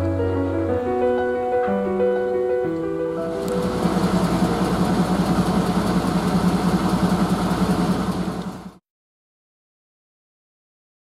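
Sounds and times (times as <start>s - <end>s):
diesel engine throbbing: 3.2s - 8.8s.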